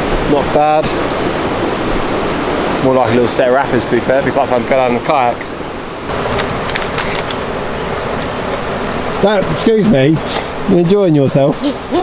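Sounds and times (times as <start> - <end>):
water rushing over rapids: 0.0 - 12.0.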